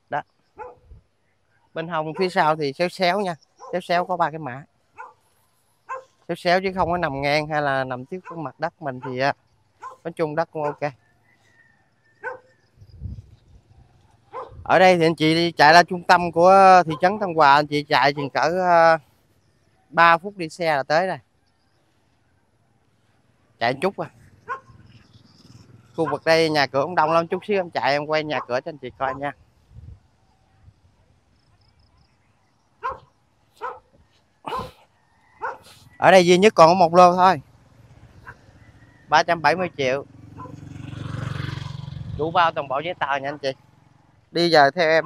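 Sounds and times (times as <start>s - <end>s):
dog barking: 0.6s - 0.8s, 2.1s - 2.4s, 3.6s - 3.8s, 5.0s - 5.2s, 5.9s - 6.2s, 8.2s - 9.2s, 9.8s - 10.9s, 12.2s - 12.5s, 14.3s - 14.6s, 18.1s - 18.4s, 24.4s - 24.8s, 26.0s - 26.3s, 28.4s - 29.2s, 32.8s - 33.9s, 34.5s - 34.8s, 35.4s - 35.7s, 40.4s - 40.6s.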